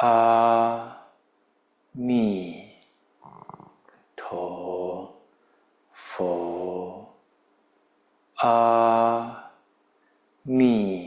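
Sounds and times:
monk chanting slowly: 0.0 - 1.2, 5.9 - 7.2, 8.3 - 9.6, 10.4 - 11.0.

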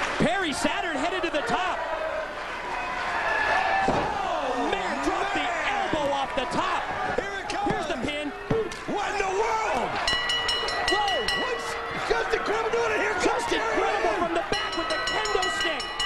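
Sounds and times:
crowd shouting and yelling: 0.0 - 16.0.

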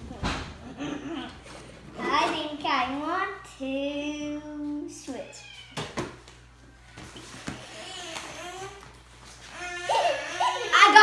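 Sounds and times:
children murmuring: 9.5 - 11.0.

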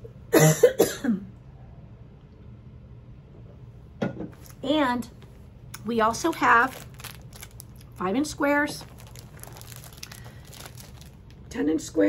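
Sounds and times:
woman coughing: 0.3 - 1.3.

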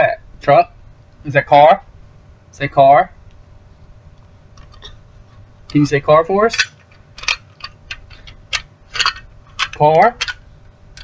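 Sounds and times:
plastic toy clicks and rattles: 7.2 - 10.4.

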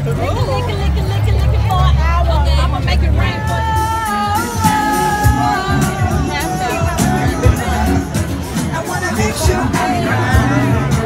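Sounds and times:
crowd chatter: 0.0 - 11.0
loud party music: 1.7 - 11.0
person singing over music: 3.8 - 11.0.

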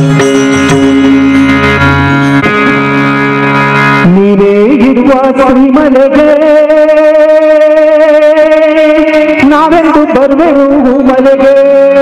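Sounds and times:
harmonium holding steady note: 0.0 - 10.8.

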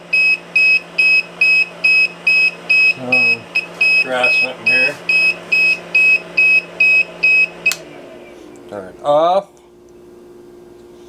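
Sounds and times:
high-pitched alarm beeps: 0.1 - 7.8.

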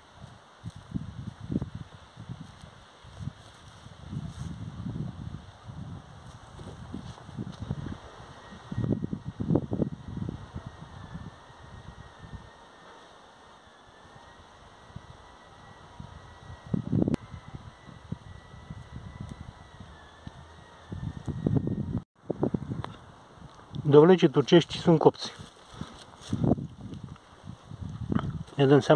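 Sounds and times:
wind buffeting microphone: 0.0 - 12.6, 14.8 - 23.9, 25.3 - 28.9
faint steady high tone: 2.4 - 22.0.

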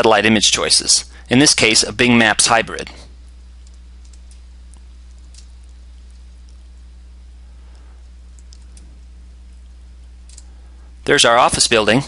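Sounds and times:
low electrical hum with hiss: 0.0 - 12.0
computer mouse clicks: 3.6 - 6.6.

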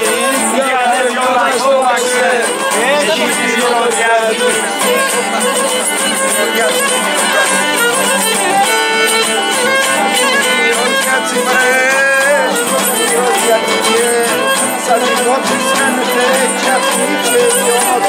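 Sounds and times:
bowed lyra melody: 0.0 - 18.0
lute accompaniment: 0.0 - 18.0.

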